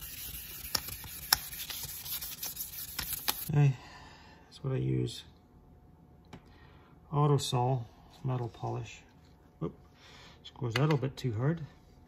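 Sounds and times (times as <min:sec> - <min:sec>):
sandpaper rubbing on metal: 0:00.0 - 0:03.5.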